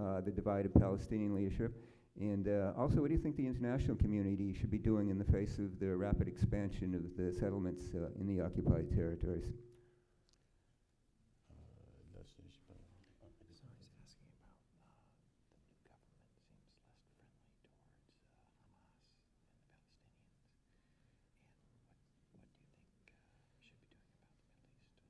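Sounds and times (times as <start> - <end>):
men whispering: 11.5 - 20.7, 21.3 - 25.0.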